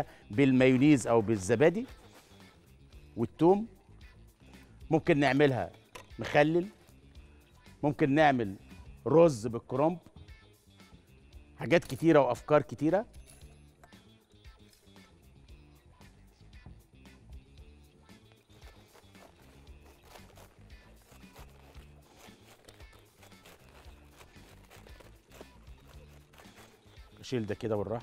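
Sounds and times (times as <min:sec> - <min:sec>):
faint background music: 0:00.0 - 0:28.0
knife cutting cabbage on board: 0:18.6 - 0:27.2.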